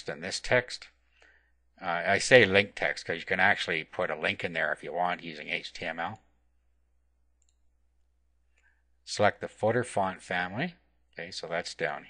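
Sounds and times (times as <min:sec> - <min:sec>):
faint computer mouse click: 0:07.4 - 0:07.7.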